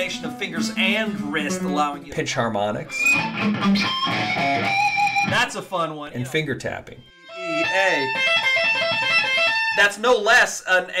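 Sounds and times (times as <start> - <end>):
electric guitar pinch harmonics: 2.8 - 5.5, 7.0 - 10.2.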